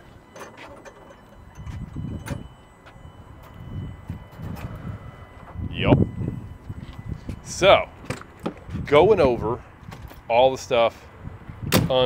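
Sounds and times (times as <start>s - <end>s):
truck hood low rumbling: 0.0s - 10.4s.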